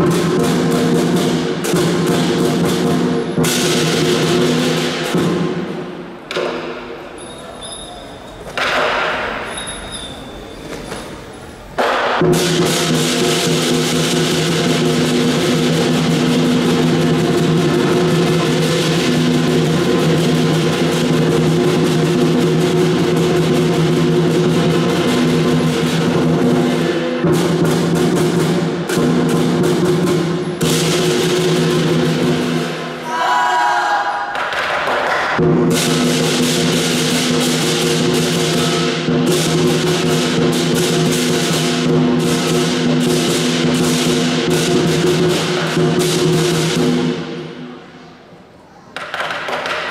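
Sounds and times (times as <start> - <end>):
lion drum beaten fast: 0.0 - 5.6, 12.1 - 32.9, 35.4 - 47.2
clashing cymbals: 35.5 - 47.7.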